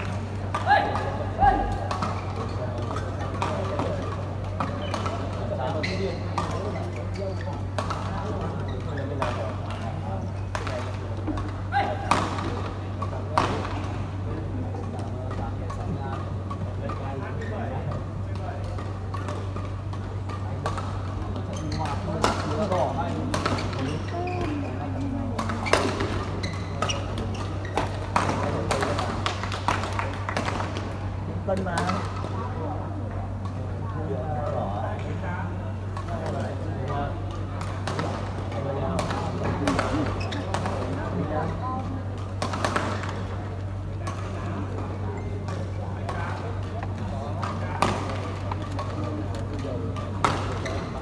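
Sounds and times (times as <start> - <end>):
rackets hitting shuttlecock: 0.0 - 32.4, 35.9 - 41.2, 42.2 - 51.0
low hall hum: 0.0 - 51.0
players' voices: 0.0 - 51.0.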